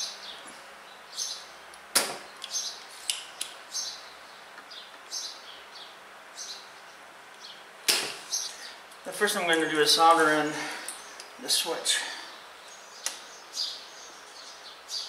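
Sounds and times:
small bird chirping: 2.3s - 8.8s, 12.5s - 15.0s.

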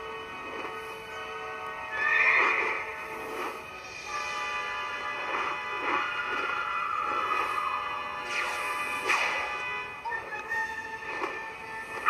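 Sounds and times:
film score music: 0.0s - 12.0s
horse whinnying: 2.0s - 2.8s.

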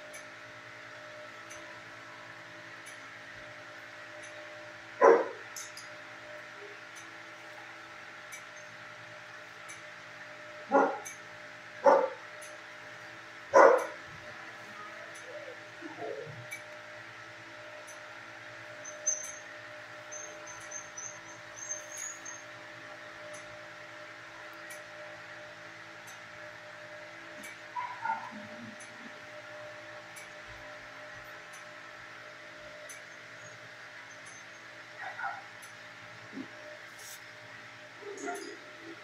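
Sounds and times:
steady machine hum: 0.0s - 39.0s
dog whining: 38.0s - 38.6s.

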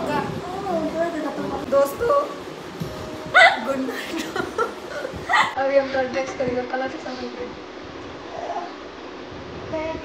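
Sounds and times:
vocal yelps: 3.3s - 3.8s, 5.3s - 5.6s
laughter: 4.0s - 5.6s.

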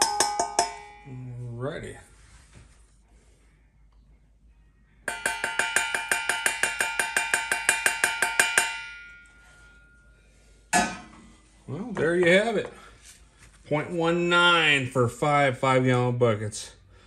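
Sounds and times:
ringing metallic taps: 0.0s - 1.1s, 5.1s - 9.9s.

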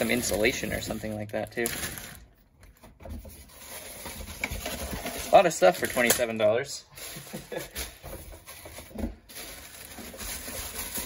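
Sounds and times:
plastic bags rustling: 0.0s - 2.4s, 3.4s - 11.0s.

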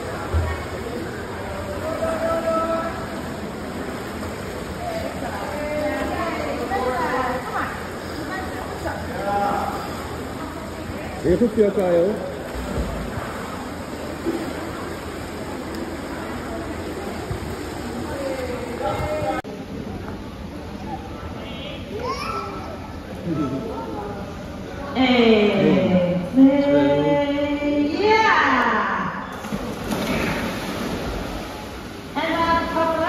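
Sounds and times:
faint echoing voices: 0.0s - 33.0s
pool water noise: 0.0s - 33.0s
children jumping into pool: 29.3s - 32.0s.

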